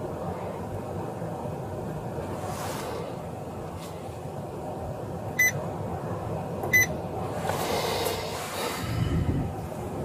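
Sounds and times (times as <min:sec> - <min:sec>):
car rumble: 0:00.0 - 0:10.0
short electronic beeps: 0:06.7 - 0:06.9.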